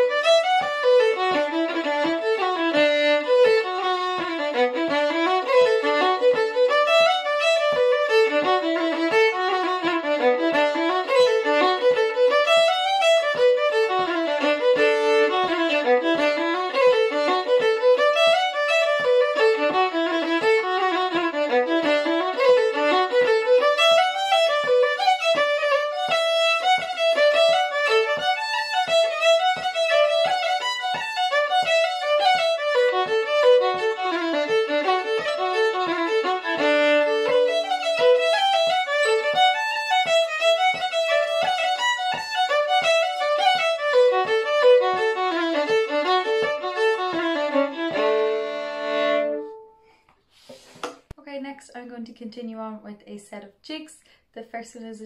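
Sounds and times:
low tap keeping the beat: 0:00.0 - 0:49.6
fast solo fiddle tune: 0:00.0 - 0:49.8.

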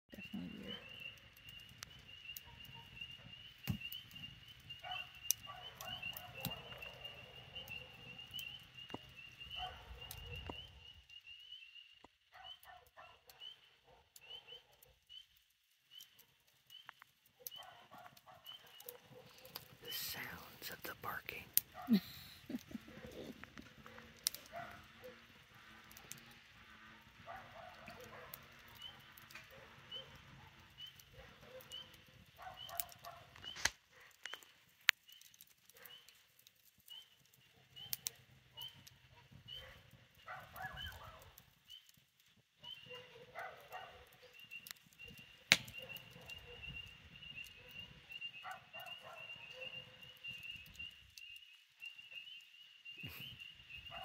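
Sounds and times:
fire popping: 0:00.1 - 0:54.0
wood fire crackling: 0:00.1 - 0:54.0
distant dog barking: 0:04.8 - 0:08.7, 0:09.4 - 0:11.0, 0:12.3 - 0:15.1, 0:17.3 - 0:19.8, 0:22.8 - 0:34.5, 0:35.6 - 0:36.2, 0:36.9 - 0:41.4, 0:42.6 - 0:44.5, 0:45.1 - 0:50.3.

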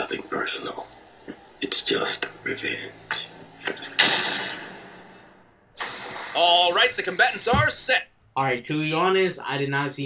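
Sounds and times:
sudden loud noise burst: 0:05.8 - 0:07.1.

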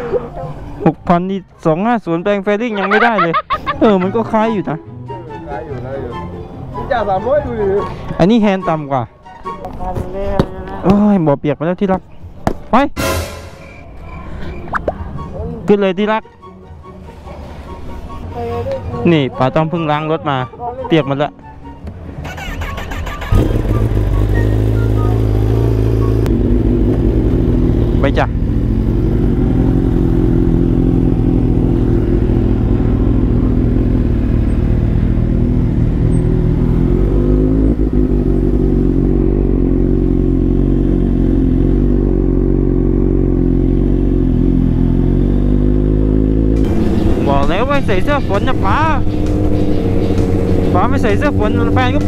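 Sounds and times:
motorcycle engine rumble: 0:21.9 - 0:52.0.

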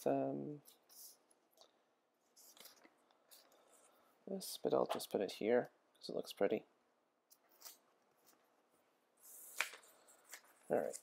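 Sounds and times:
paper sheet rustling: 0:09.2 - 0:11.0.

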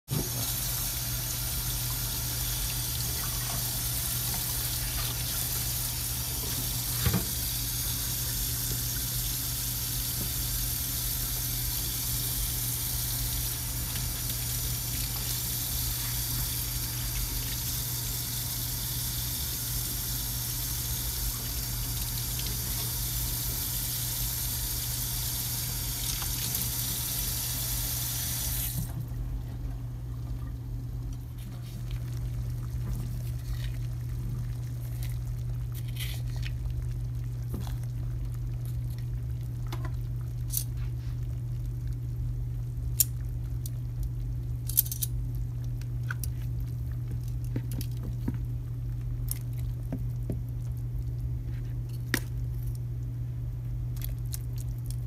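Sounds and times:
low steady hum: 0:00.1 - 0:55.0
faucet running into steel sink: 0:00.2 - 0:28.9.

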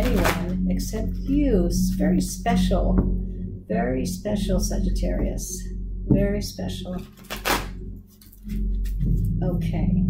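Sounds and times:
soft background music: 0:00.0 - 0:10.0
cards riffle-shuffled: 0:07.0 - 0:09.0.

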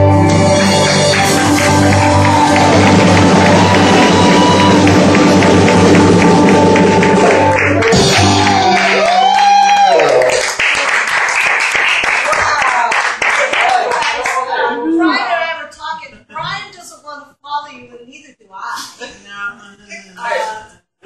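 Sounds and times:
live band playing: 0:00.0 - 0:09.3
people clapping: 0:00.3 - 0:14.8.

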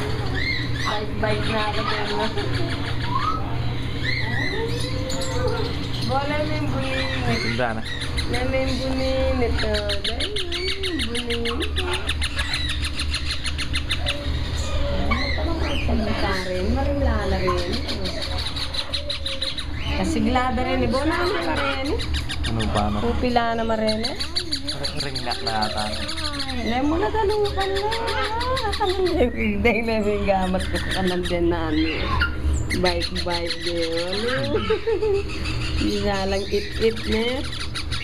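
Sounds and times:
parrots chirping: 0:00.0 - 0:38.0
people's voices: 0:19.9 - 0:31.8.

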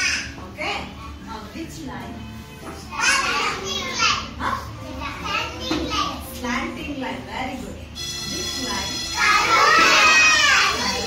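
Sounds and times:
children calling out together: 0:09.1 - 0:11.0.

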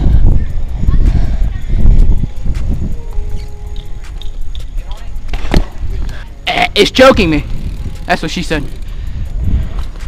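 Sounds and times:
wind on microphone: 0:00.0 - 0:06.4, 0:07.1 - 0:10.0
bicycle tyres rolling on asphalt: 0:00.0 - 0:10.0.

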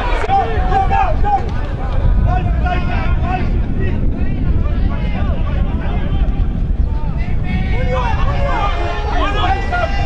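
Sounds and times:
players shouting: 0:00.0 - 0:10.0
wind buffeting microphone: 0:00.0 - 0:10.0.

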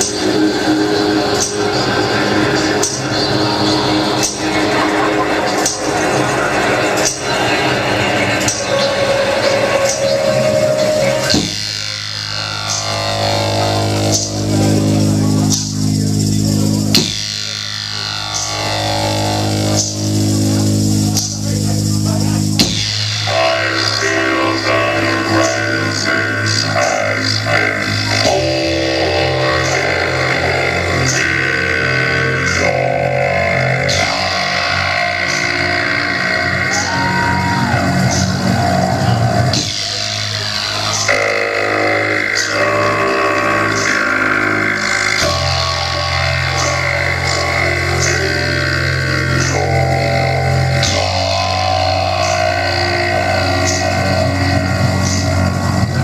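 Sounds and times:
electric guitar and bass chords: 0:00.0 - 0:56.0.

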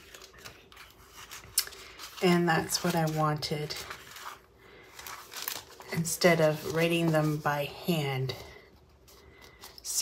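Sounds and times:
paper sticker sheets rustling: 0:00.0 - 0:08.4.

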